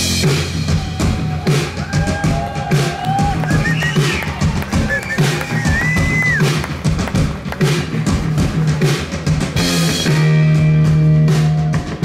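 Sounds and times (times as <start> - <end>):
bass: 0.0 - 12.0
drum beat: 0.0 - 12.0.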